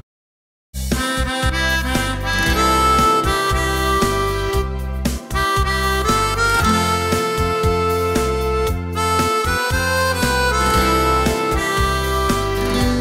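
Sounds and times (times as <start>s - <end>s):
steady bass line: 0.8s - 13.0s
harmonica slow melody: 0.9s - 13.0s.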